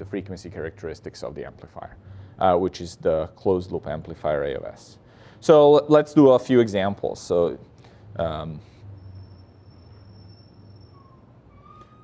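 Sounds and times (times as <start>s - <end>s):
low hum: 7.6s - 12.0s
high-pitched whine: 8.1s - 12.0s.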